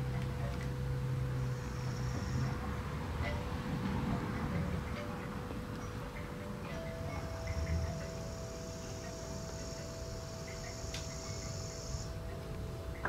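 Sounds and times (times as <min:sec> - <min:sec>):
faint steady hum: 0:00.0 - 0:13.0
high-pitched insect trill: 0:01.4 - 0:02.8, 0:06.7 - 0:13.0.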